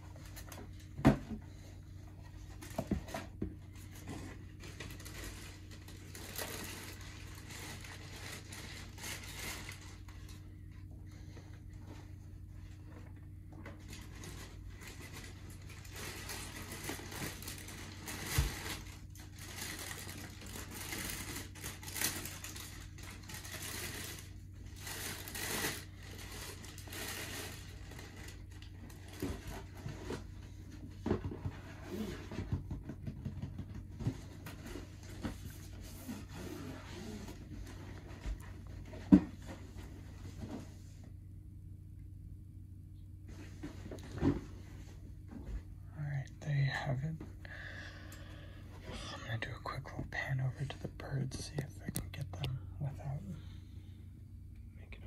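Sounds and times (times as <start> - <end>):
low hum: 0.0 - 55.0
tissue paper rustling: 3.7 - 10.5, 13.8 - 30.5
scraping in cardboard box: 34.6 - 38.0.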